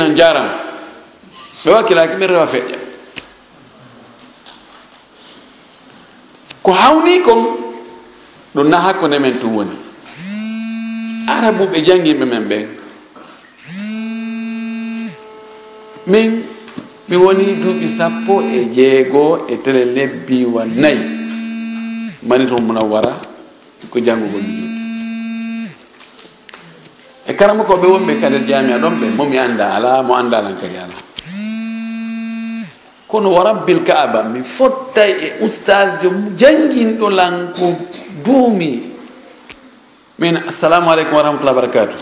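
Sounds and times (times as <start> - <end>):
man holding buzzy note: 10.1 - 11.8, 13.6 - 16.2, 17.1 - 18.8, 20.6 - 22.4, 24.2 - 25.9, 27.7 - 29.4, 31.2 - 32.9.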